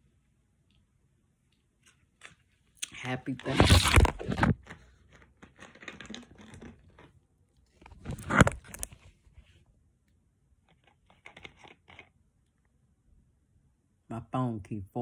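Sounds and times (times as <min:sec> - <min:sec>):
phone handling noise: 0:03.4 - 0:04.8.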